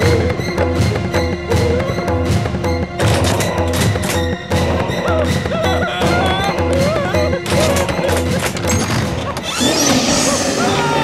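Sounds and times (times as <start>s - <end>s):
tense horror music: 0.0s - 11.0s
door bolt rattling and knocking: 7.4s - 9.4s
rising whoosh: 9.5s - 11.0s.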